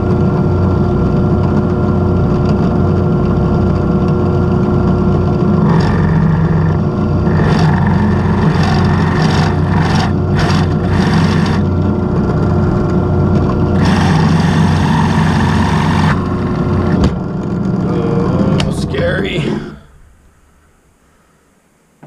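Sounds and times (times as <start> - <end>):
drill press motor hum: 0.0 - 21.2
drill bit cutting hiss: 5.6 - 11.6, 13.8 - 16.4.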